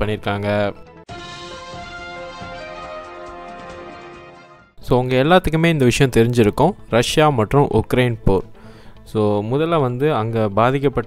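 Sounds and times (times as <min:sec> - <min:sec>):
news theme jingle: 0:01.1 - 0:04.8.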